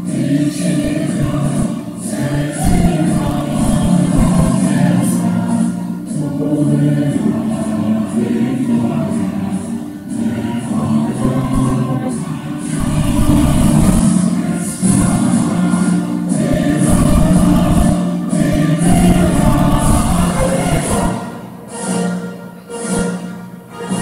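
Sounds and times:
choir singing: 0:00.0 - 0:24.0
instrumental accompaniment: 0:00.0 - 0:24.0.

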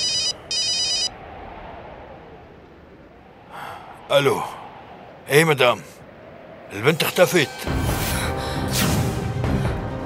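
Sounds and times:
mobile phone ringtone trilling: 0:00.0 - 0:01.1.

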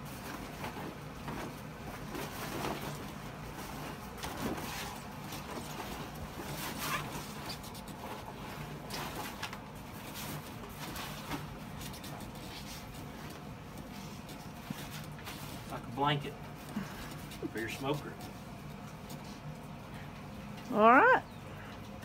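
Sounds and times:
fabric cover rustling on smoker: 0:00.0 - 0:19.8.

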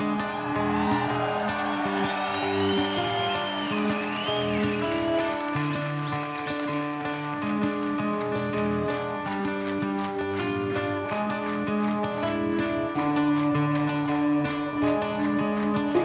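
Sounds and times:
rock band playing live: 0:00.0 - 0:16.0.

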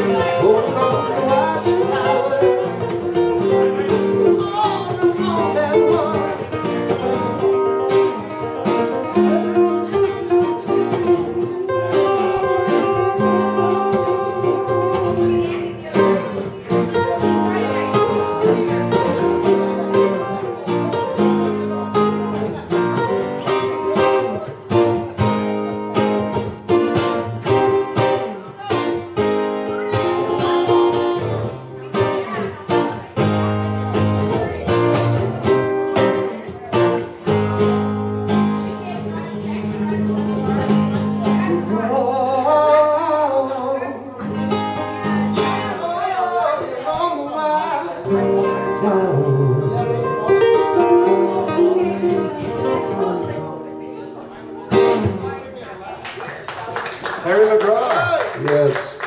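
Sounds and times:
acoustic guitars strumming: 0:00.0 - 0:56.0.

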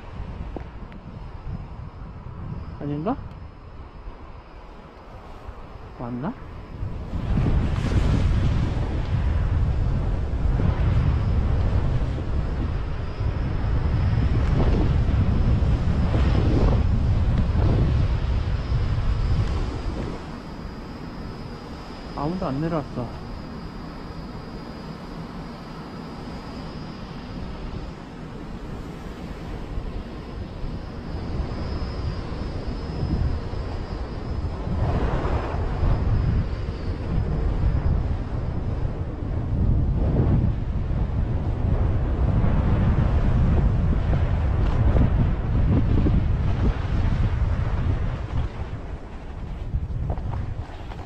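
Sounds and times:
wind rushing over microphone: 0:00.0 - 0:51.0.

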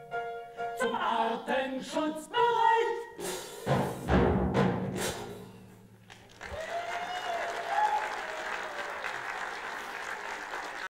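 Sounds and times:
audience applause: 0:06.1 - 0:10.9
drawn-out cheer: 0:06.3 - 0:10.9.

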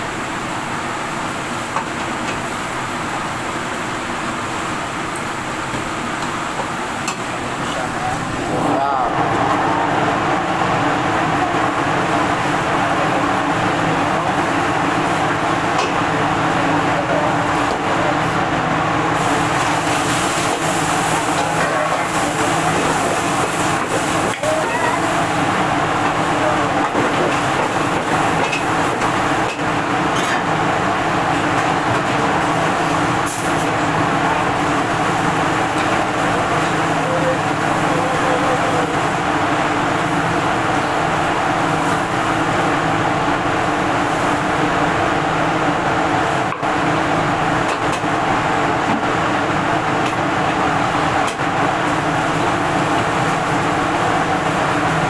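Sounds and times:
gas burner and extractor roar: 0:00.0 - 0:55.0
food sizzling in oil: 0:19.2 - 0:25.5.

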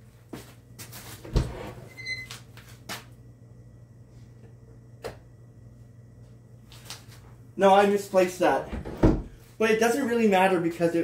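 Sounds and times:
steady low hum: 0:00.0 - 0:11.0
knocks and bumps in cupboards: 0:08.7 - 0:09.4.

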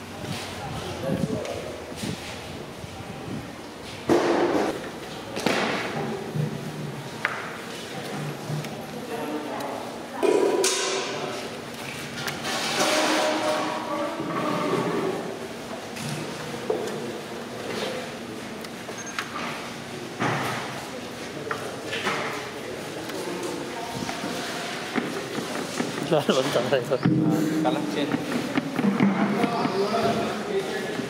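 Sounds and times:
people talking in background: 0:00.0 - 0:31.0
sharp knocks and clatter: 0:24.9 - 0:30.3.

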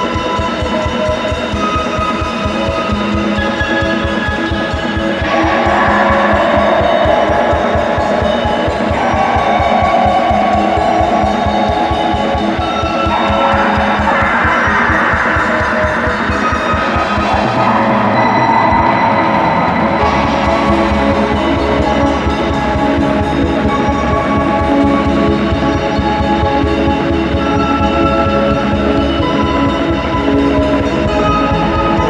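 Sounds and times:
distorted guitar and keyboard chords: 0:00.0 - 0:32.0.

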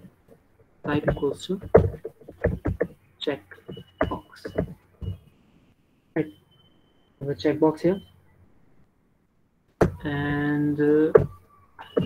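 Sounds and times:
person speaking words: 0:00.9 - 0:01.7, 0:10.0 - 0:11.3.

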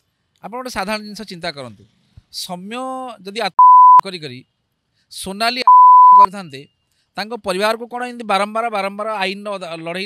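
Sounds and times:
censor bleep tone: 0:03.6 - 0:04.0, 0:05.7 - 0:06.3.

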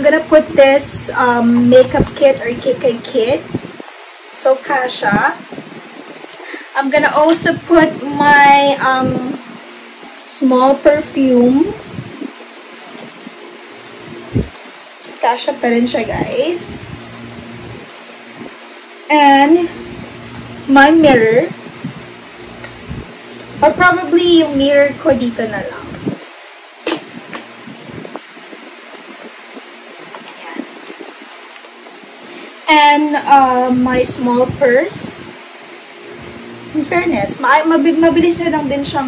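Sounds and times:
steady background hiss: 0:00.0 - 0:39.0.

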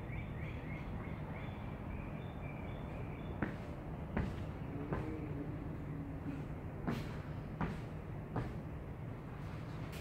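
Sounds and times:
steady low hum: 0:00.0 - 0:10.0
jump landings on artificial turf: 0:03.4 - 0:05.5, 0:06.7 - 0:08.9.

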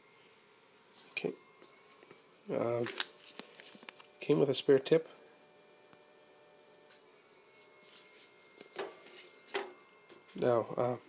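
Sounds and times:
plastic bag rustling: 0:02.8 - 0:04.1.

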